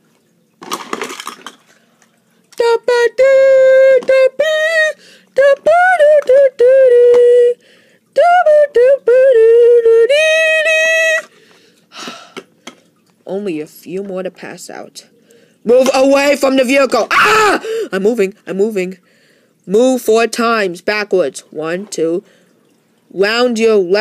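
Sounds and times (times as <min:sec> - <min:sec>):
high voice singing wordless tune: 0:02.5 - 0:11.4, 0:13.3 - 0:19.0, 0:19.6 - 0:22.3, 0:23.1 - 0:24.0.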